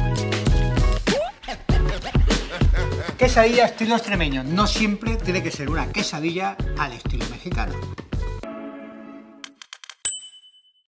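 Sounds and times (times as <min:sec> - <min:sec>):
quick clicks: 0:09.4 - 0:10.0
bright electronic ding: 0:10.0 - 0:10.8.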